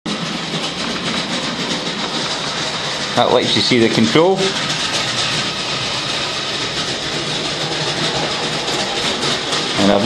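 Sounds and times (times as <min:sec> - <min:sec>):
wheels clattering on track: 0:00.1 - 0:10.0
toy train motor whine: 0:00.2 - 0:10.0.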